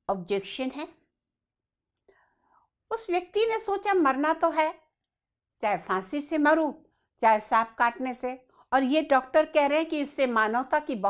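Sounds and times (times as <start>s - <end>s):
woman speaking: 0.1s - 1.0s, 2.9s - 4.8s, 5.6s - 11.0s
faint breath: 2.0s - 2.8s.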